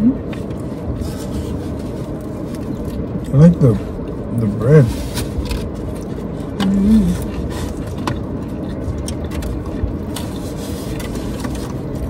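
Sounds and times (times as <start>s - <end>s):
person chewing: 0.2s - 4.3s, 5.2s - 12.0s.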